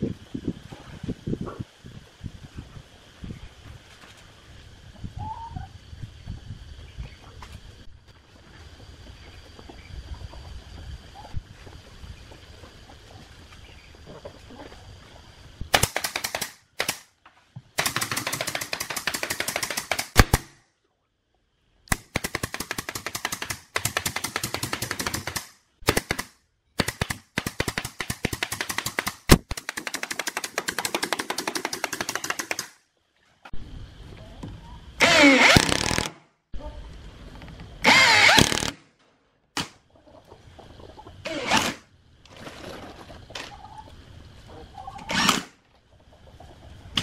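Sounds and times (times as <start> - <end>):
nail gun firing into plywood: 15.8 - 17.1, 17.8 - 20.6, 21.9 - 32.8, 35.0 - 36.2, 37.9 - 38.8, 45.1 - 45.5
cordless drill whining: 35.0 - 36.1, 37.8 - 38.7.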